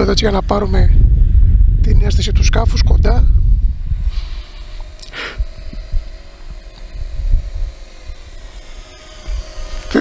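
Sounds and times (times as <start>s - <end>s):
quadcopter propellers humming: 0.0s - 10.0s
wind rumble on microphone: 0.0s - 10.0s.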